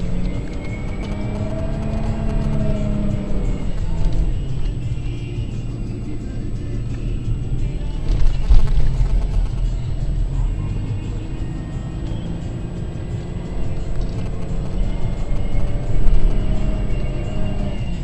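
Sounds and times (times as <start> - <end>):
music playing: 0.0 - 18.0.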